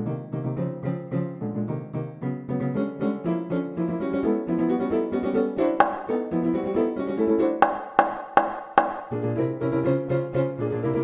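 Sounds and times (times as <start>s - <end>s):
piano music: 0.0s - 11.0s
sharp accented piano strikes: 5.8s - 6.7s, 7.6s - 9.4s.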